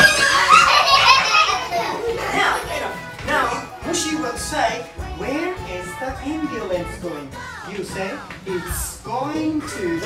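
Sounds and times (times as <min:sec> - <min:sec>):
children laughing: 0:00.0 - 0:03.0
children talking and calling out: 0:00.0 - 0:08.9.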